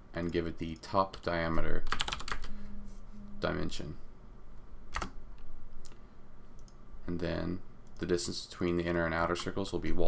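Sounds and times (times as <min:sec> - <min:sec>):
keyboard keystroke: 0:04.9 - 0:05.2.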